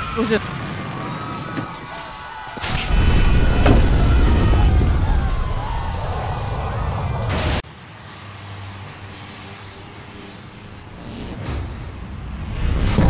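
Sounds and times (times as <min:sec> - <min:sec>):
debris falling: 0:00.9 - 0:07.5
rumbling crash of building collapsing: 0:01.4 - 0:07.6.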